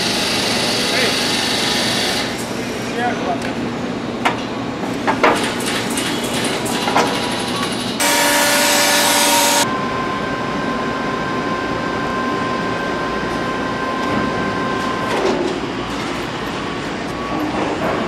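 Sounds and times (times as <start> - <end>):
high-pitched machine whine: 8.0 - 17.6.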